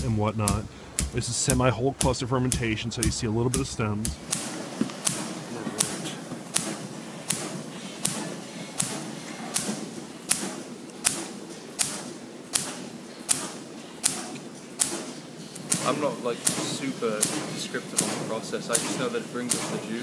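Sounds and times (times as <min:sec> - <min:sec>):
sharp bursts of compressed air: 0:00.0 - 0:20.0.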